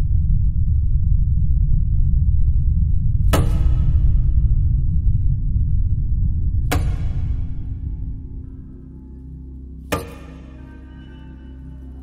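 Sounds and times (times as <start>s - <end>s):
deep cinematic rumble: 0.0s - 12.0s
steady low hum: 0.0s - 12.0s.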